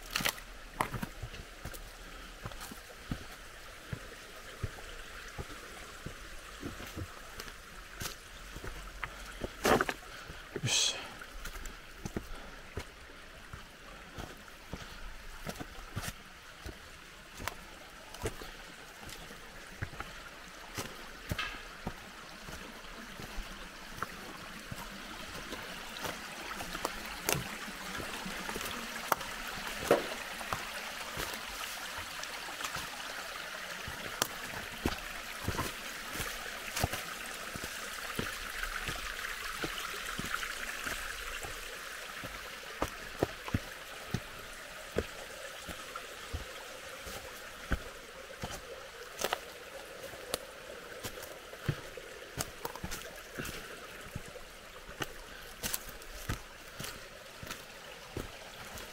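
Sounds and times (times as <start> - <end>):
footsteps on stony trail: 0.0 - 58.9
stream trickling over rocks: 0.0 - 58.9.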